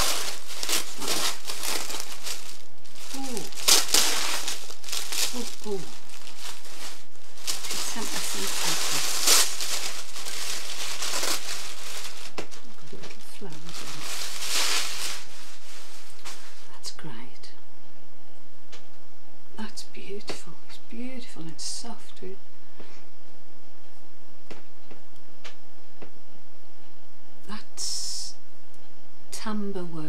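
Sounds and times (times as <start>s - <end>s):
tissue paper crinkling: 0.0s - 16.7s.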